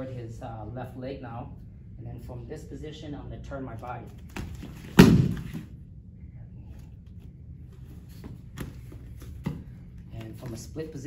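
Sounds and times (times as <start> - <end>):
body thud on foam mat: 4.3 - 5.7.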